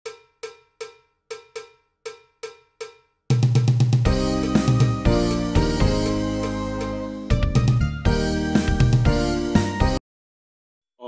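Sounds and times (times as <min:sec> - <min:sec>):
cowbell-like metallic hits: 0:00.1 - 0:03.6
music with heavy bass: 0:03.4 - 0:10.0.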